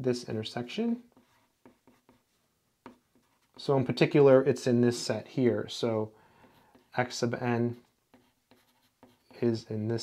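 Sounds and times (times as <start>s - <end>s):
pen scratching on paper: 1.1s - 3.6s, 8.1s - 9.4s.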